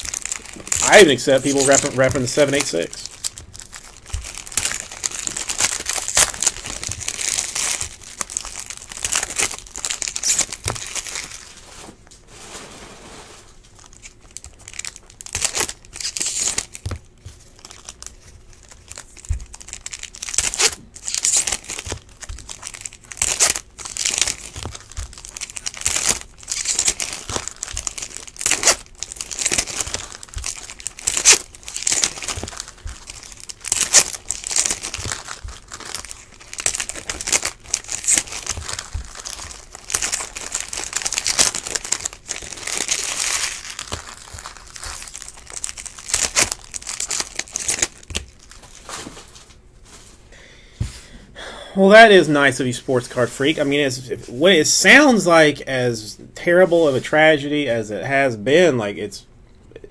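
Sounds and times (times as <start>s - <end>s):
foil wrappers crinkling and tearing: 0.0s - 12.4s, 13.1s - 50.0s.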